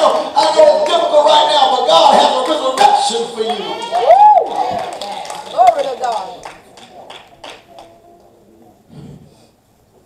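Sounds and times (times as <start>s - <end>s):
scattered hand claps: 2.1s - 3.6s, 4.7s - 7.9s.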